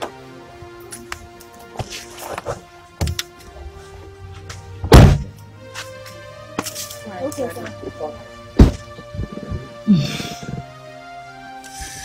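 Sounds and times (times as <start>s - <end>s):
background music: 0.0s - 12.0s
car door thud: 4.8s - 5.4s, 8.6s - 9.1s.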